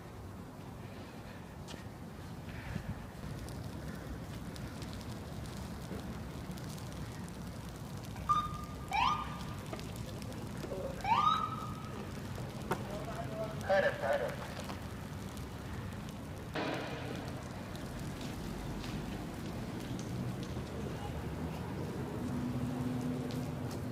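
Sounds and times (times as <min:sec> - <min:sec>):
noisy street background: 0:00.0 - 0:23.9.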